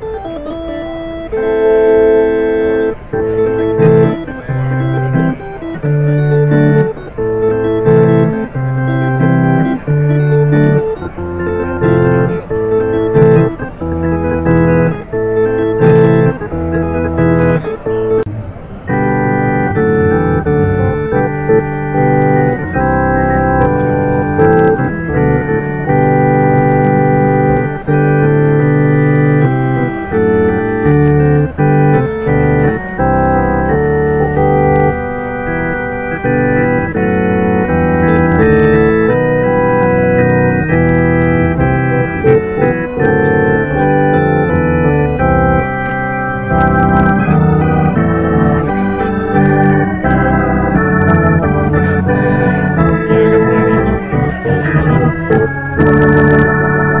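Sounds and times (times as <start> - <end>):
organ bass line: 0.0 - 57.0
organ chords: 0.0 - 57.0.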